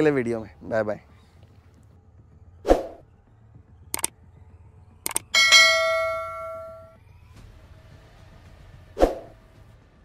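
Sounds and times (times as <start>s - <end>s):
bright bell ding: 5.4s - 7.0s.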